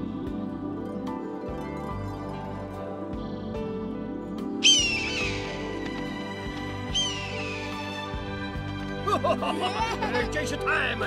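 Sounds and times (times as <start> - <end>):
soft background music: 0.0 - 11.0
sharp high bird calls: 4.6 - 5.9, 6.8 - 8.3.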